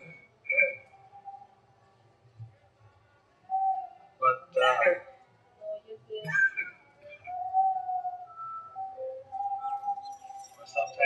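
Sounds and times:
high whistle-like tones: 6.2 - 11.0.

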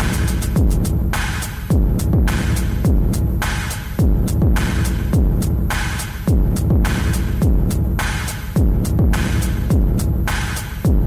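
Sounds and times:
deep kick drum: 0.0 - 11.0.

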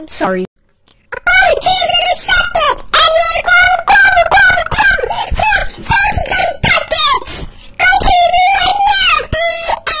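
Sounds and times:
high-pitched voice wailing: 1.1 - 10.0.

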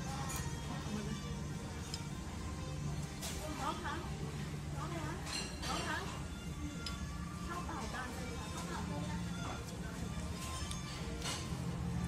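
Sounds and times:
tableware clinking: 0.0 - 2.2, 5.1 - 7.2, 9.5 - 12.0
background music: 0.0 - 12.0.

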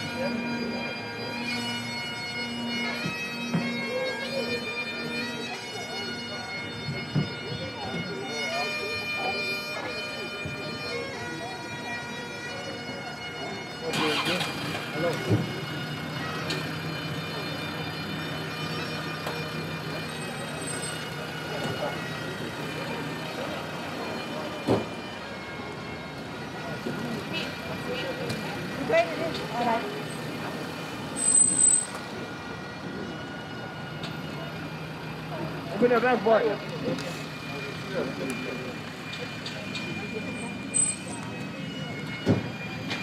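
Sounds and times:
steady outdoor hum: 0.0 - 43.0
car engine pulling away: 13.7 - 41.4
scattered voices: 19.3 - 43.0.

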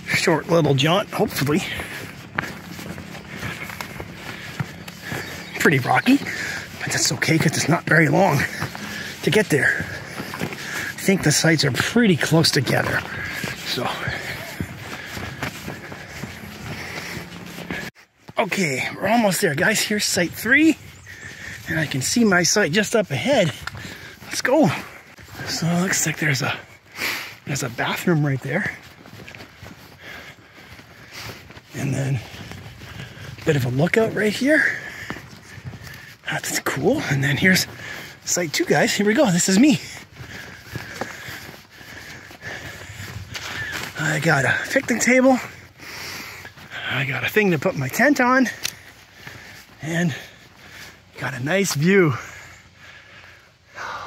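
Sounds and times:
footsteps on rocky dirt trail: 0.0 - 54.0.

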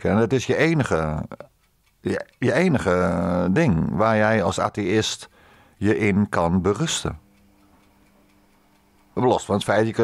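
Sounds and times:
faint ticking: 0.0 - 10.0
low steady hum: 0.0 - 10.0.

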